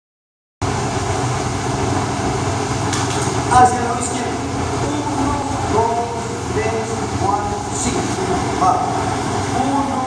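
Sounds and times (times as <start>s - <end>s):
crowded dance hall din: 0.7s - 10.0s.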